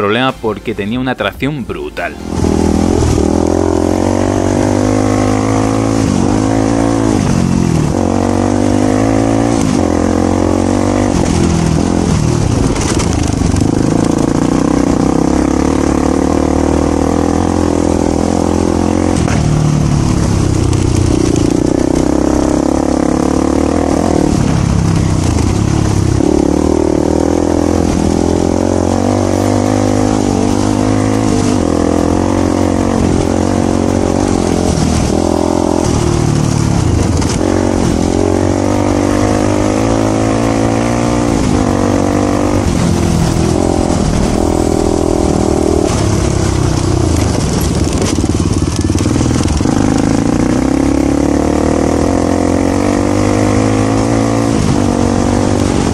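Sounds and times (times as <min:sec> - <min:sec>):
motorcycle engine revving: 0:02.0 - 0:55.9.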